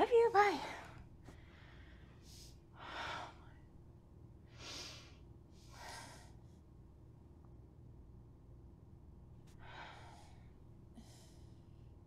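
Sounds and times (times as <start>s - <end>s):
woman breathing heavily: 0.5s - 3.8s, 4.4s - 6.6s, 9.5s - 12.0s.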